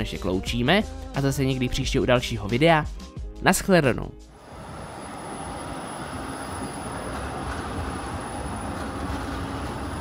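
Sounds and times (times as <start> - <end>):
tram wheels rumbling on rails: 4.4 - 10.0.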